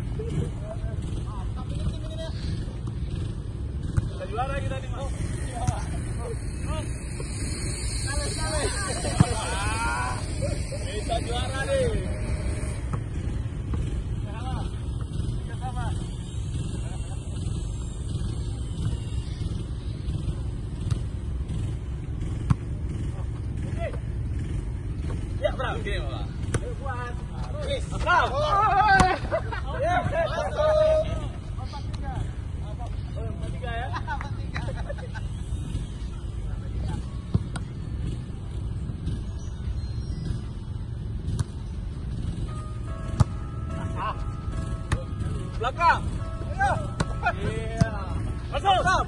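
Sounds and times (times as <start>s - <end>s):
steady low rumble: 0.0s - 39.1s
players calling out: 3.7s - 20.6s, 26.2s - 38.2s, 42.4s - 49.0s.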